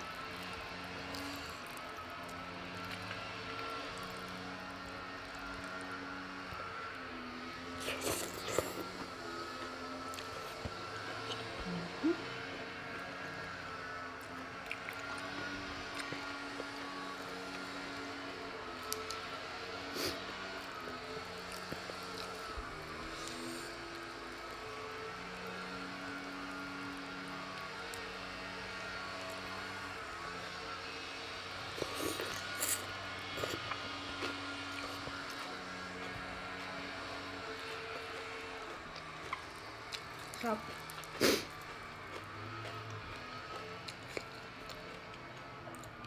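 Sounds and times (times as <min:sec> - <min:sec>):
slurping and smacking noodles: 0:00.0 - 0:46.0.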